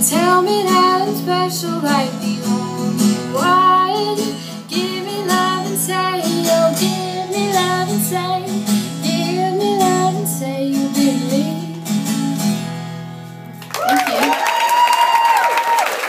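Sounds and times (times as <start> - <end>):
young woman singing: 0.0 - 12.2
acoustic guitar: 0.0 - 14.0.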